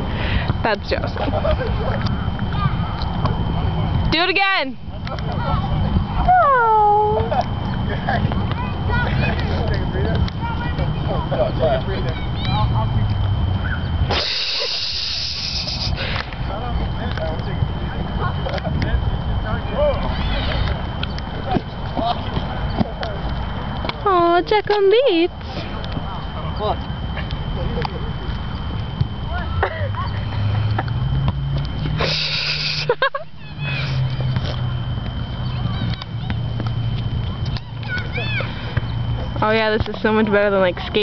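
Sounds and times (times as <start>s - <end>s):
continuous low rumble: 0.0s - 41.0s
steady low hum: 0.0s - 41.0s.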